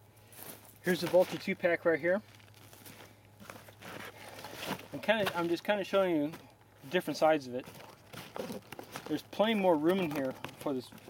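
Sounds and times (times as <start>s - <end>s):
backpack rustling and scuffing: 2.4s - 5.6s, 6.2s - 9.2s.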